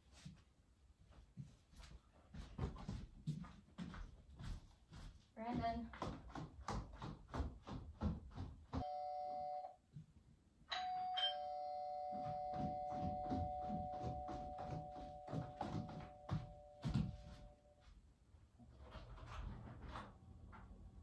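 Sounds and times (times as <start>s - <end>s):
two-tone doorbell chime: 8.8s - 9.7s, 10.7s - 17.7s.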